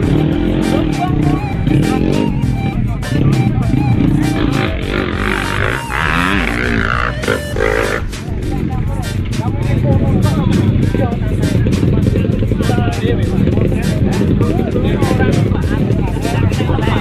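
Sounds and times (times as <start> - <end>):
dirt bike engine revving: 0.0 - 17.0.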